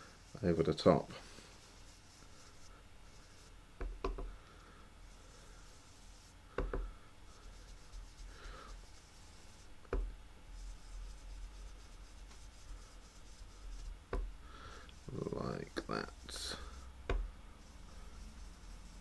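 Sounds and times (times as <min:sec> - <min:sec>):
brush rubbing on cardstock: 0:00.0 - 0:03.6, 0:05.0 - 0:19.0
brush knocking on ink pad: 0:03.8 - 0:04.4, 0:06.5 - 0:06.9, 0:09.9 - 0:10.2, 0:13.2 - 0:14.4, 0:17.0 - 0:17.7.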